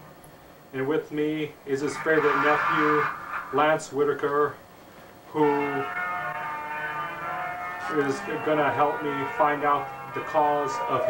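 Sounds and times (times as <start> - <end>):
man chanting held tone: 1.7 - 4.2, 5.3 - 6.0, 7.8 - 11.0.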